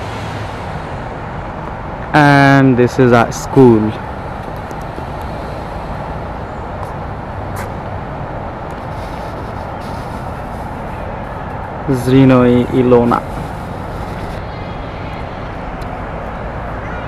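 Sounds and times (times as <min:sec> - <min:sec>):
outdoor background rush: 0:00.0 - 0:17.0.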